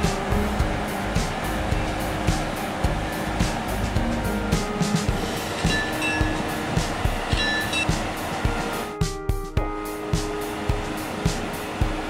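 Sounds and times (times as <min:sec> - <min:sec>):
electric locomotive whining: 0:00.0 - 0:08.9
regular rhythmic knocking: 0:00.0 - 0:12.0.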